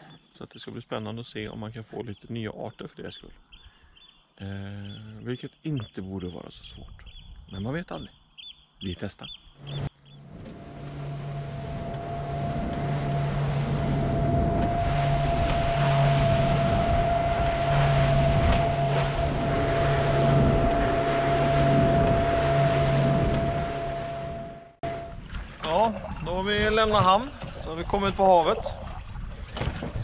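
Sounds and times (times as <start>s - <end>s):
man speaking: 0.4s - 3.4s, 4.4s - 6.9s, 7.5s - 8.1s, 8.8s - 9.3s
motorboat engine drone: 9.6s - 25.3s
rush of spray and wind: 10.3s - 23.9s.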